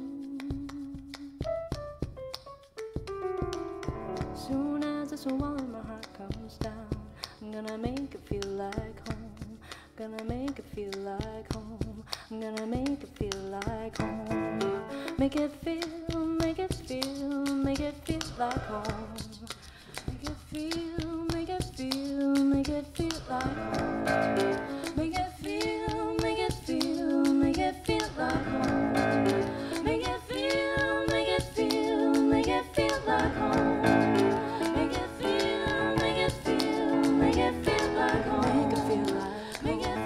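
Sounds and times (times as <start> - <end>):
woman singing: 0.0 - 1.5, 4.2 - 40.0
grand piano accompaniment: 1.0 - 10.2, 13.9 - 16.2, 23.3 - 40.0.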